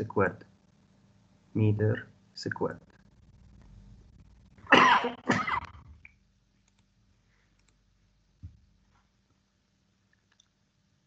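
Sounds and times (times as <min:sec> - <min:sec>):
computer mouse clicks: 0:06.6 - 0:06.9, 0:07.5 - 0:07.8.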